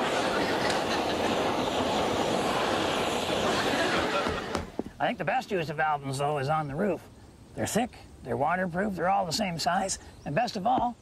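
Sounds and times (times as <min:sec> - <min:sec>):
gas torch flame hissing: 0:00.0 - 0:04.9
person laughing: 0:03.4 - 0:04.7.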